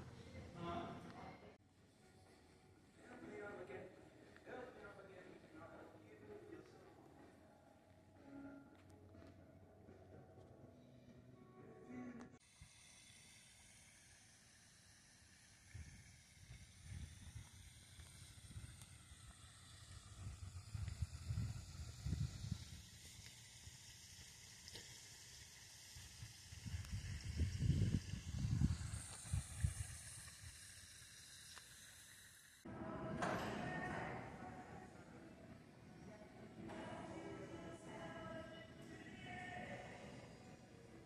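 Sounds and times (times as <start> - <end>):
steady high hiss: 12.0 - 41.0
wind buffeting microphone: 19.8 - 22.8, 26.6 - 30.2
indoor background music: 32.7 - 41.0.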